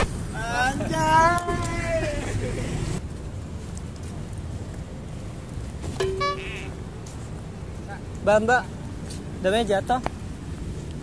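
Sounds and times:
low traffic rumble: 0:00.0 - 0:11.0
car horn toot: 0:06.0 - 0:06.8.

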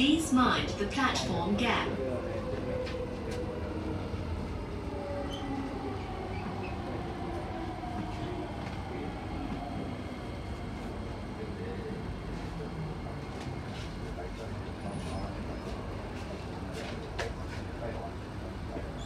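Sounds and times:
train wheels rumbling on track: 0:00.0 - 0:19.0.

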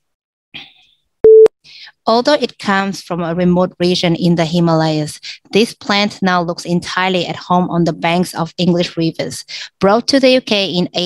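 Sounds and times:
short electronic beep: 0:01.2 - 0:01.5.

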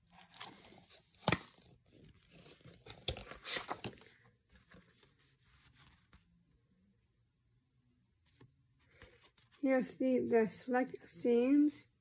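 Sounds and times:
plastic case rustling and crinkling: 0:00.1 - 0:06.2.

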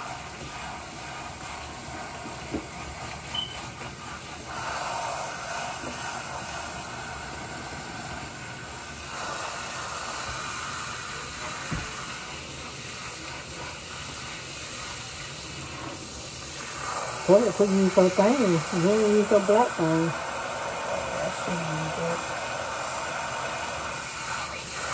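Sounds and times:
water spraying onto hair: 0:00.0 - 0:24.9.

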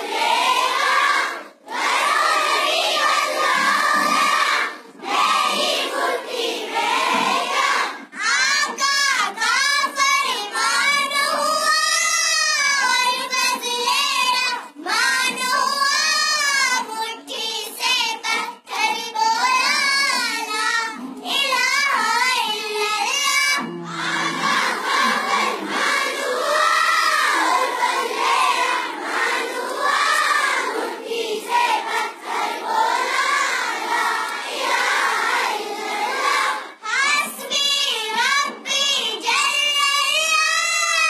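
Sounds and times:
girls singing devotional song: 0:00.0 - 0:41.0.

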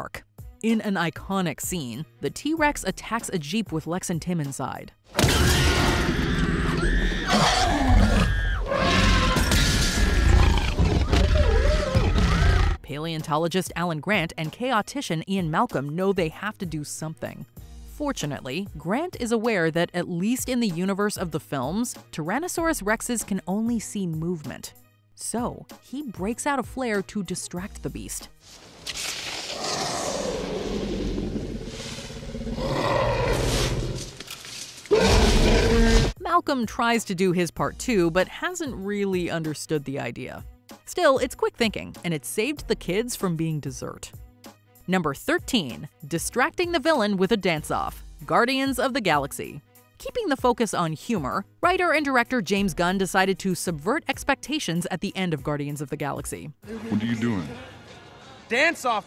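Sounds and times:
dinosaur roaring: 0:05.2 - 0:12.8, 0:29.5 - 0:34.2, 0:34.9 - 0:36.2
children screaming: 0:06.1 - 0:08.8.

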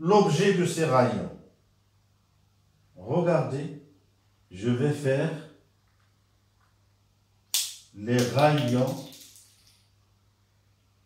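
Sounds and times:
sharp snap with hiss: 0:07.5 - 0:09.1.

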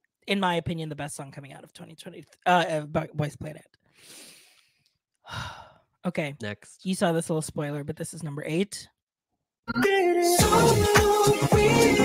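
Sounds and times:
person breathing close to microphone: 0:03.9 - 0:05.8.

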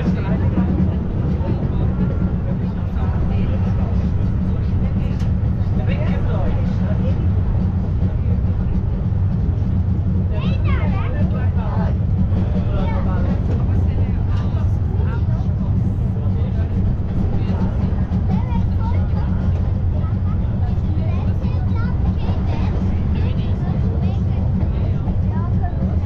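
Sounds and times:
passengers chatting: 0:00.0 - 0:26.0
railway carriage rumbling: 0:00.0 - 0:26.0.

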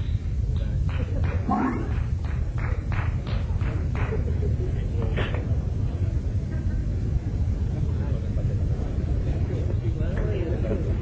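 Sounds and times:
low rumble: 0:01.2 - 0:02.4.

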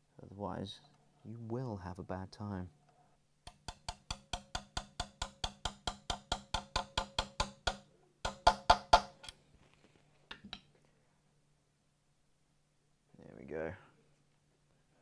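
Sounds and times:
small hammer tapping metal: 0:03.5 - 0:09.4.

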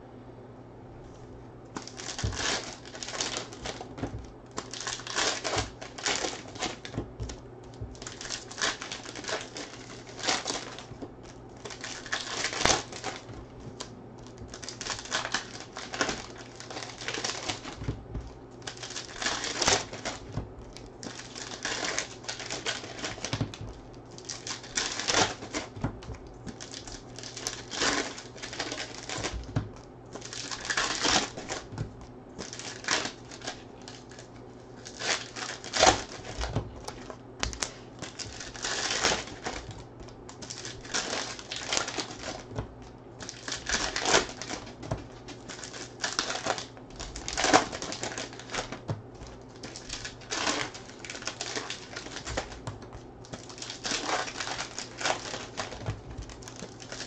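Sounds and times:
foil wrappers crinkling and tearing: 0:01.7 - 0:57.0.

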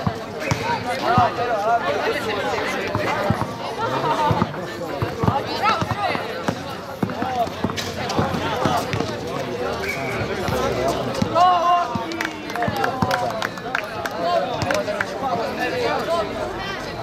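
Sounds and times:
people calling out and talking: 0:00.0 - 0:17.0
basketball bouncing: 0:04.4 - 0:09.2.

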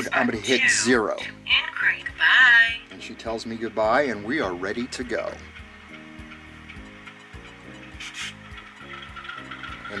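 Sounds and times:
brief hiss: 0:08.0 - 0:08.4.

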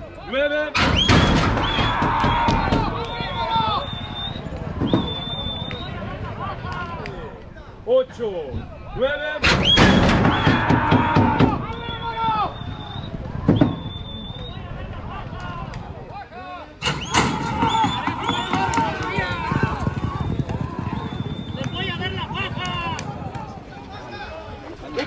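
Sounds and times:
spectators shouting and cheering: 0:01.1 - 0:07.5, 0:08.9 - 0:25.0
starting gate bang: 0:16.8 - 0:21.4.

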